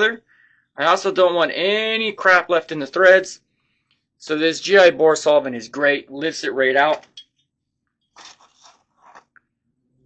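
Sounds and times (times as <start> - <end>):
faint scraping and rustling: 8.0 - 9.4.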